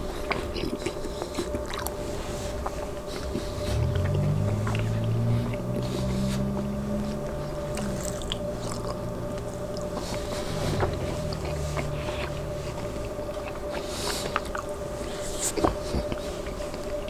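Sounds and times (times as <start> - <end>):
close chewing and mouth clicks: 0.0 - 17.0
low hum: 1.6 - 17.0
faint steady tone: 1.9 - 17.0.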